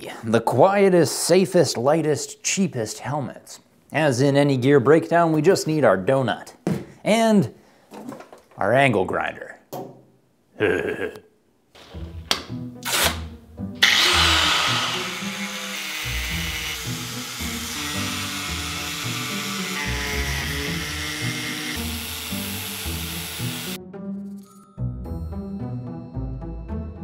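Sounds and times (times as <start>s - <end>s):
masking tape handling: 11.8s - 13.2s
angle grinder grinding: 13.8s - 23.8s.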